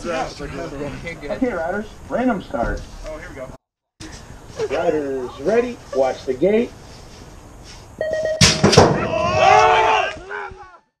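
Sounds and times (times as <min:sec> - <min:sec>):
electronic cadence beeps: 0:08.0 - 0:08.4
people shouting and whooping: 0:09.0 - 0:10.9.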